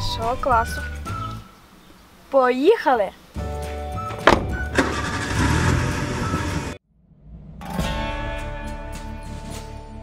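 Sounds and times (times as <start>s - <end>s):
background music: 0.0s - 1.6s, 2.6s - 6.8s, 7.6s - 10.0s
car engine running: 4.7s - 6.8s.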